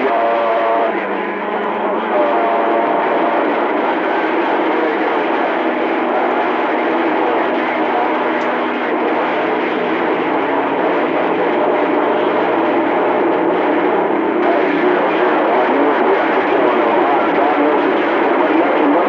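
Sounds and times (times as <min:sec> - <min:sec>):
radio static and hiss: 0:00.0 - 0:19.0.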